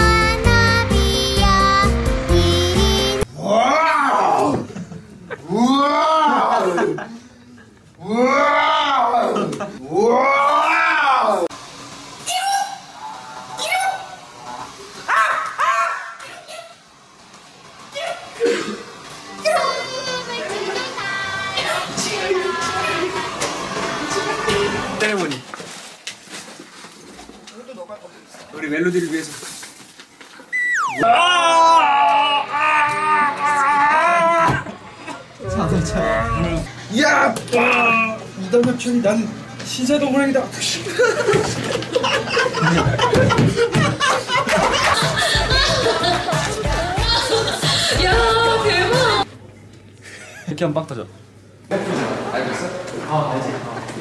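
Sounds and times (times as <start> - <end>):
background music: 0.0 - 3.2
man howling: 5.5 - 6.8, 8.0 - 11.5, 30.6 - 34.7, 35.4 - 36.7.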